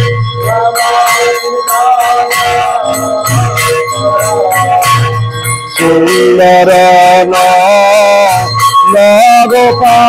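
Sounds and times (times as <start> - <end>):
metallic ringing: 0.0 - 10.0
man singing loudly: 0.4 - 5.2, 5.8 - 10.0.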